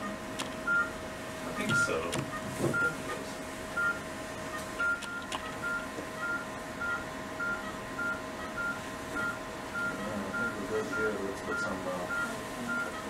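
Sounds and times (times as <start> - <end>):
steady machine hum: 0.0 - 13.0
short electronic beeps: 4.8 - 13.0.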